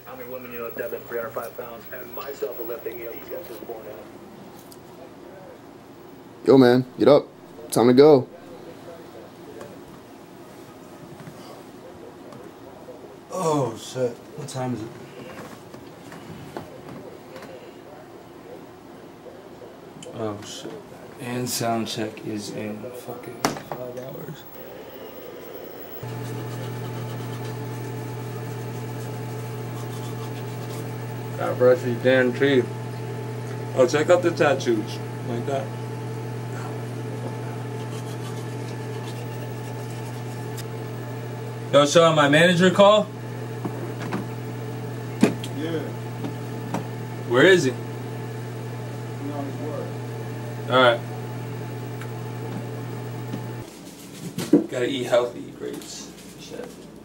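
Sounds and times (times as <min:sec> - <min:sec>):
low mechanical buzzing hum: 0:00.0 - 0:04.8, 0:22.6 - 0:53.7.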